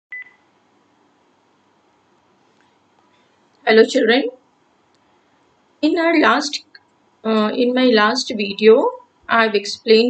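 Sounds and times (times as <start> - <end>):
faint steady hiss: 0.1 - 10.0.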